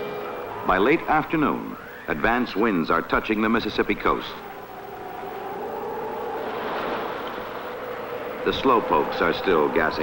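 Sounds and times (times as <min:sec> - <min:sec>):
strong wind howling: 0:00.0 - 0:10.0.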